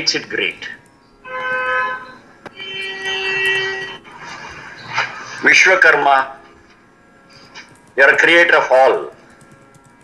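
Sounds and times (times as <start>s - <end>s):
long held note: 1.2s - 4.1s.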